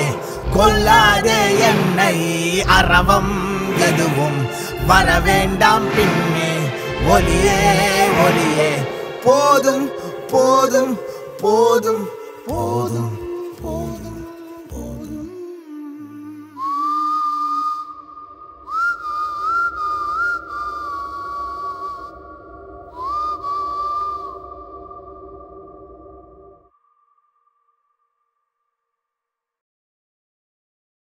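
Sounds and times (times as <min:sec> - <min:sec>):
sustained string chords: 0:00.0 - 0:15.1
person singing: 0:00.0 - 0:17.8
whistled melody: 0:00.0 - 0:27.2.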